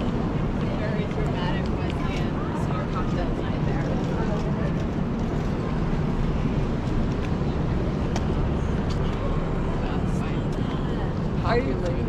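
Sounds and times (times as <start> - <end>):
passers-by talking: 0.0 - 12.0
traffic rumble: 0.0 - 12.0.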